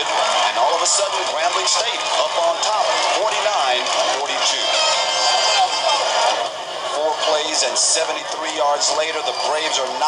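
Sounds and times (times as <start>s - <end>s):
crowd background noise: 0.0s - 10.0s.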